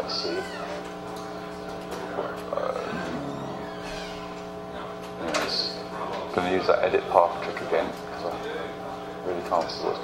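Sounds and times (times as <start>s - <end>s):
steady hum of held tones: 2.0s - 5.0s
faint brief voice: 2.8s - 4.0s.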